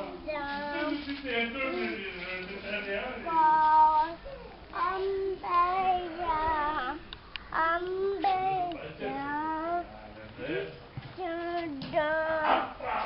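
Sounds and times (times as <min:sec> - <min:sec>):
child singing a melody: 0:00.0 - 0:01.0, 0:03.3 - 0:09.9, 0:11.1 - 0:12.6.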